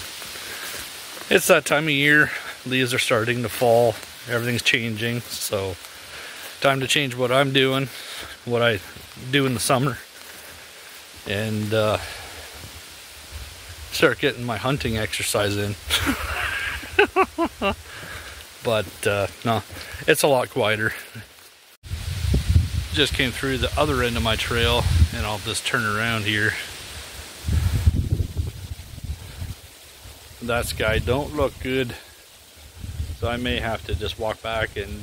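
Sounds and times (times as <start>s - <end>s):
footsteps on a wooded trail: 0.0s - 30.3s
soft rustling hiss: 0.0s - 35.0s
wind buffeting microphone: 21.8s - 25.3s, 27.4s - 29.7s, 32.7s - 35.0s.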